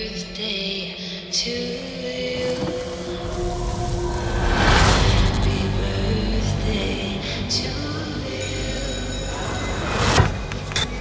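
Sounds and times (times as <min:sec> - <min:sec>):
low rumble: 0:02.4 - 0:08.4.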